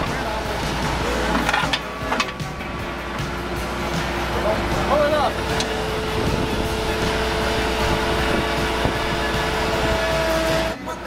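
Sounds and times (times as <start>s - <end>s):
loader engine running: 0.0s - 11.0s
music playing: 0.0s - 11.0s.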